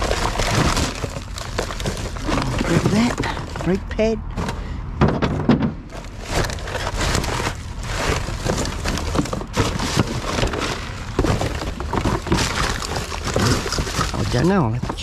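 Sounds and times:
rubbish rustling and crinkling: 0:00.0 - 0:15.0
small knocks and clatters: 0:04.4 - 0:15.0.

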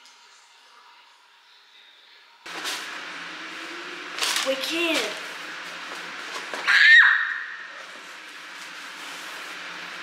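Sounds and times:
child squealing: 0:06.6 - 0:07.6.

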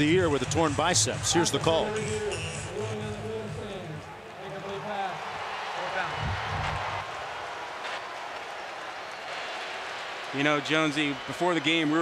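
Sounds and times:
referee announcing over loudspeaker: 0:00.0 - 0:06.4, 0:10.3 - 0:12.0
crowd noise: 0:00.0 - 0:12.0.

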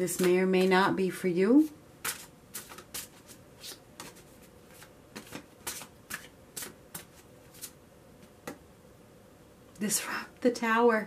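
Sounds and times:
cards being shuffled: 0:02.0 - 0:07.8.

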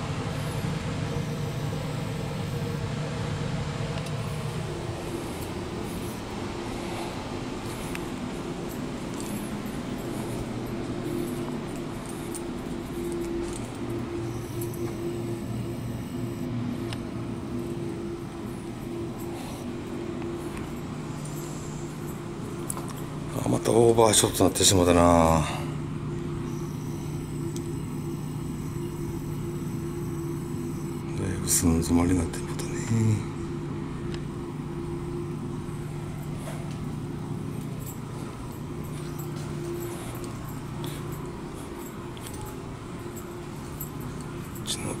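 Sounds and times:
faint held tone: 0:00.0 - 0:45.0
low hum and rumble: 0:00.0 - 0:45.0.

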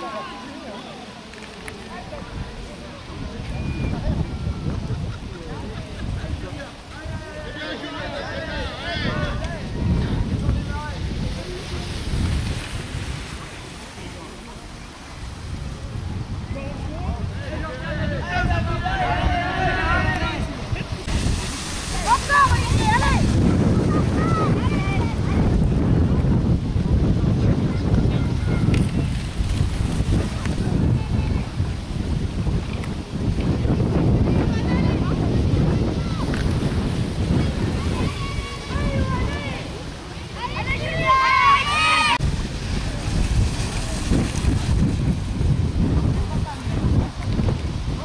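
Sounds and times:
voices calling out: 0:00.0 - 0:15.8, 0:16.4 - 0:25.7, 0:34.2 - 0:45.1
wind buffeting microphone: 0:01.6 - 0:48.0.

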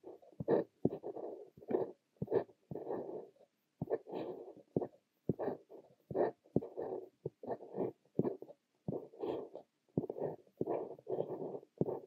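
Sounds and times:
pen nib scratching paper: 0:00.0 - 0:12.0
pen nib ticking on paper: 0:00.0 - 0:12.0.

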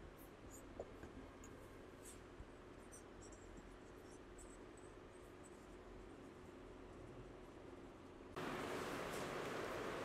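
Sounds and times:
room hum: 0:00.0 - 0:10.0.

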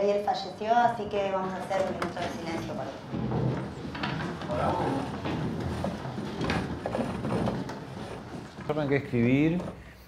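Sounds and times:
chairs and desks creaking: 0:00.0 - 0:10.0
shuffling: 0:01.2 - 0:10.0.

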